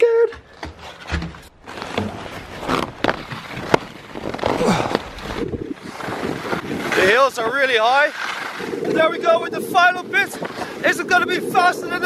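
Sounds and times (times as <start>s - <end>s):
skis scraping on packed snow: 1.4s - 12.0s
wind buffeting microphone: 1.5s - 12.0s.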